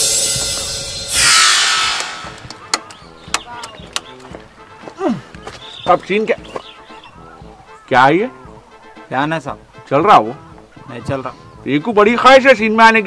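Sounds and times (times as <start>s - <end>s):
loud whoosh: 0.0s - 2.4s
downward sweeping whoosh: 0.0s - 2.5s
sharp clicks: 2.0s - 4.3s.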